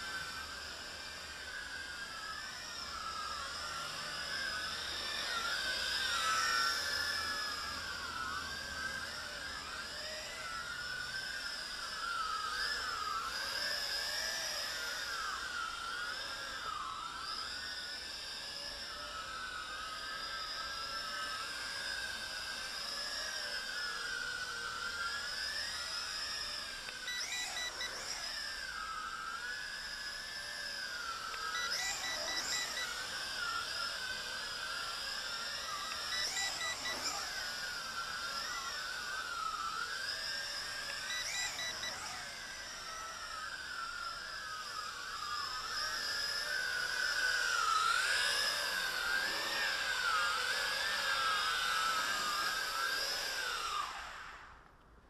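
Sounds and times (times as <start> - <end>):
drone propellers whining: 0.0 - 54.8
rapid electronic beeps: 31.6 - 33.0.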